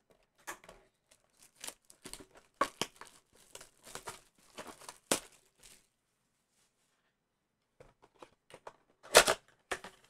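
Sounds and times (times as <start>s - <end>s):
plastic wrap tearing and crinkling: 1.1s - 5.9s.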